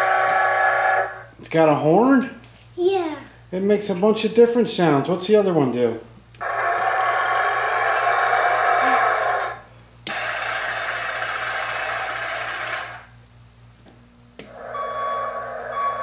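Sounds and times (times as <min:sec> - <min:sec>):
tinny toy engine noise: 0:06.4 - 0:13.1
reverse warning beeping: 0:14.6 - 0:16.0.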